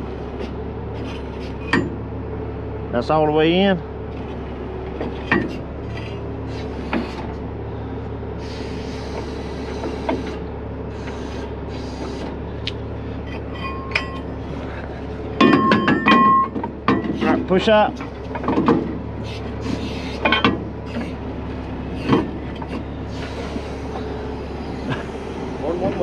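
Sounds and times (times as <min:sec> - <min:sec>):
loud metallic clanks and rattles: 0:00.0 - 0:02.1, 0:04.1 - 0:06.2, 0:13.2 - 0:21.2, 0:21.9 - 0:24.2
diesel engine running: 0:00.0 - 0:26.0
air hiss: 0:08.4 - 0:12.3.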